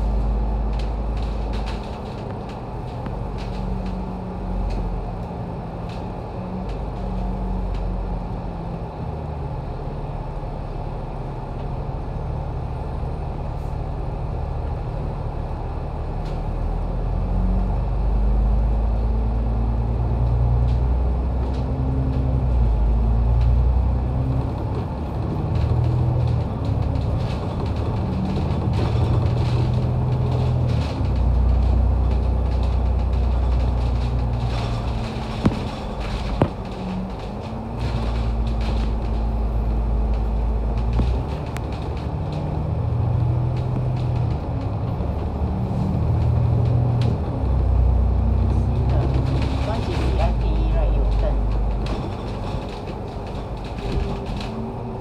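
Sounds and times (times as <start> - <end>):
bus diesel engine drone: 0.0 - 55.0
road rumble: 0.0 - 55.0.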